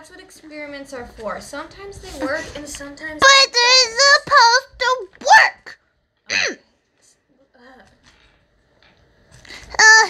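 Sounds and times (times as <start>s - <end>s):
child's wordless vocal sounds: 9.6s - 10.0s.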